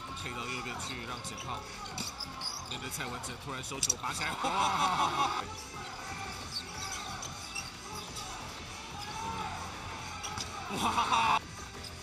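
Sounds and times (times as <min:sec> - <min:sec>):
crowd voices swell: 0:00.0 - 0:11.4
arena noise: 0:00.0 - 0:12.0.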